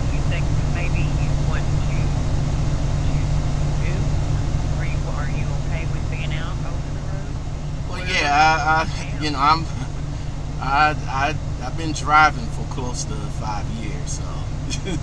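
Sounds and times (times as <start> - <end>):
faint broken voice speaking: 0.0 - 15.0
low rumble on phone line: 0.0 - 15.0.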